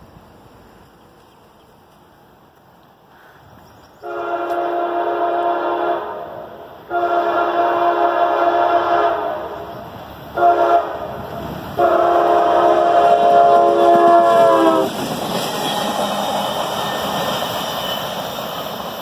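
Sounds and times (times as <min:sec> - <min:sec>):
train rumbling on rails: 0:00.0 - 0:19.0
locomotive air horn blasts: 0:04.0 - 0:09.7, 0:10.4 - 0:11.2, 0:11.8 - 0:14.9.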